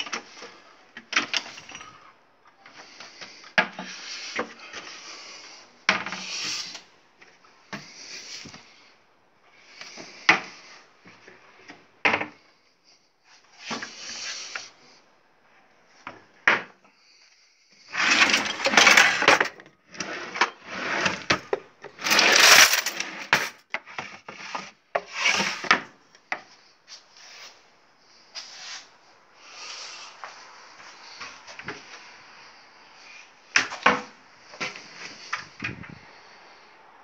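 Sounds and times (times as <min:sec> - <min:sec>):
contents clattering: 0:17.9 - 0:19.6, 0:20.4 - 0:23.6
drawers and cupboard doors shutting: 0:17.9 - 0:23.6.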